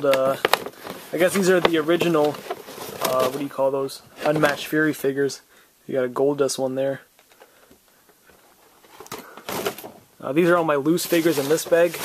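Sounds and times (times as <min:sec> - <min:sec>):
rustling: 0:00.0 - 0:05.0, 0:07.2 - 0:12.0.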